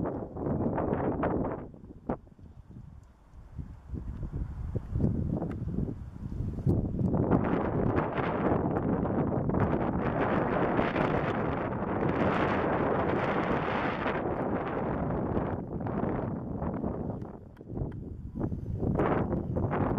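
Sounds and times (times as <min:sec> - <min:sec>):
wind buffeting microphone: 0:00.0 - 0:19.9.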